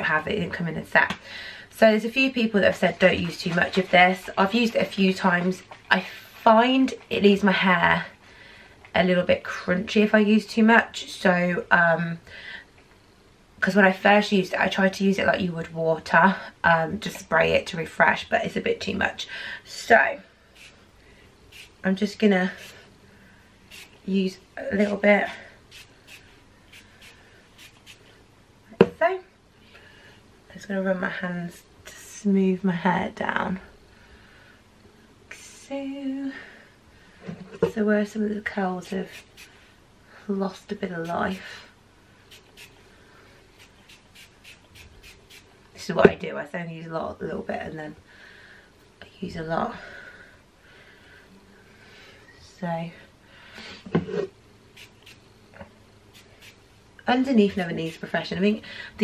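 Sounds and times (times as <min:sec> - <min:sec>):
spray bottle hissing: 0:20.6 - 0:20.8, 0:21.5 - 0:21.8, 0:23.7 - 0:24.0, 0:25.7 - 0:28.0, 0:39.1 - 0:39.5, 0:42.3 - 0:42.8, 0:43.6 - 0:45.5, 0:54.8 - 0:55.2, 0:56.1 - 0:56.6.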